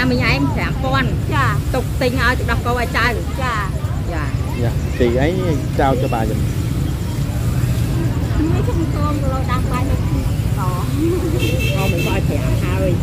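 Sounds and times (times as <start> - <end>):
people talking: 0.0 - 6.5, 7.2 - 13.0
motorbike traffic rumble: 0.0 - 13.0.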